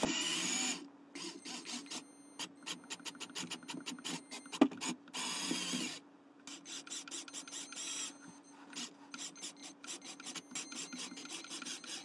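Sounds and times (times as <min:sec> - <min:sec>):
faint motor hum: 0:00.0 - 0:12.0
plastic gears clicking and rasping: 0:06.5 - 0:12.0.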